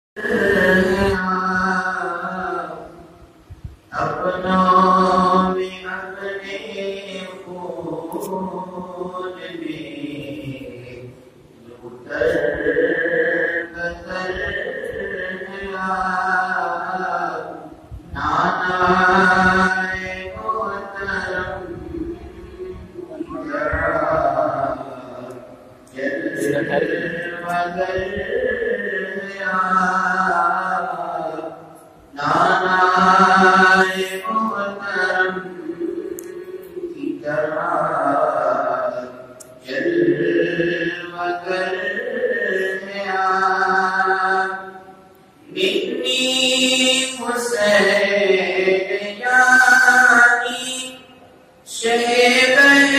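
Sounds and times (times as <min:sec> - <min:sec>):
man chanting devotional song: 0:00.2 - 0:52.9.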